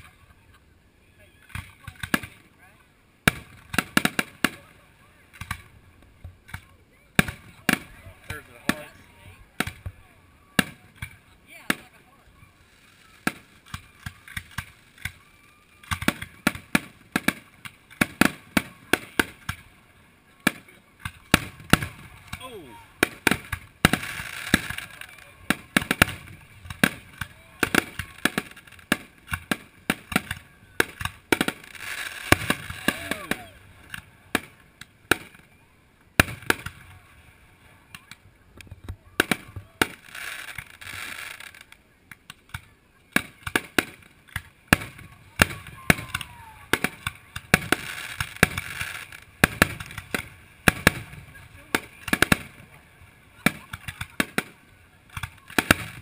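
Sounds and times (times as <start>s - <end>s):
fireworks bursting: 1.4s - 2.6s, 3.2s - 56.0s.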